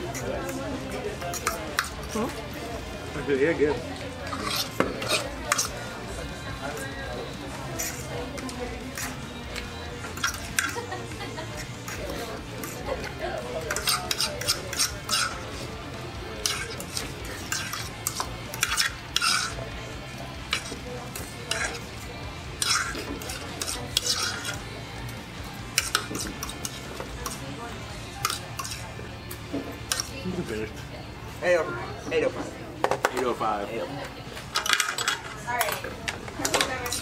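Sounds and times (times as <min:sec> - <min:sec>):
forks scraping on ceramic plates: 0:00.0 - 0:02.4, 0:04.0 - 0:24.8, 0:25.7 - 0:30.7, 0:34.4 - 0:37.0.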